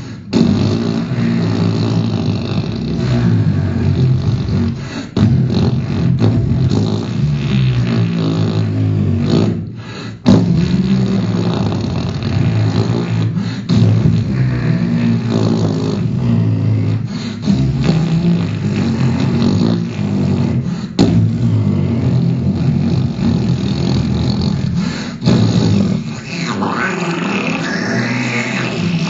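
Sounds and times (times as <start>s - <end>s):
man making buzzing voice sounds: 0.0s - 29.0s.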